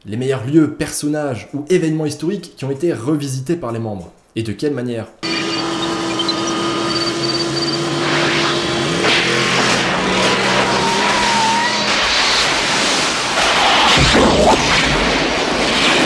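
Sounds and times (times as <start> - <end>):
car engine drone: 5.2 - 13.8
crackling electrical noise: 11.8 - 16.0.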